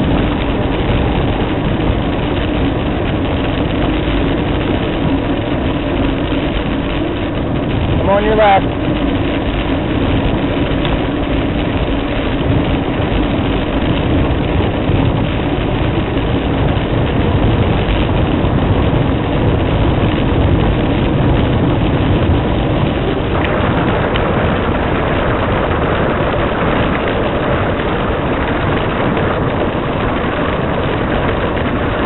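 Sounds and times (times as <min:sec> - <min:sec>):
bicycle tyres rolling on asphalt: 0:00.0 - 0:32.0
wind rushing over microphone: 0:00.0 - 0:32.0.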